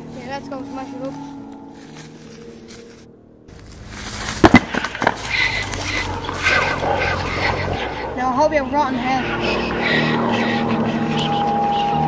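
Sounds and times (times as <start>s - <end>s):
stone slab smashing on ground: 4.0s - 5.8s
pieces landing knock: 4.2s - 5.2s.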